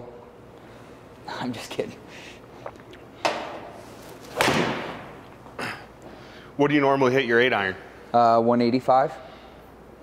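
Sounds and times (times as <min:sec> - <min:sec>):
ball smacking impact screen: 0:04.3 - 0:05.2.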